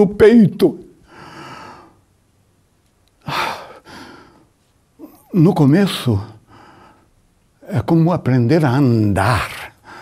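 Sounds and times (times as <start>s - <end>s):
man breathing: 1.0s - 2.1s, 3.2s - 4.6s, 6.4s - 7.2s, 9.8s - 10.0s.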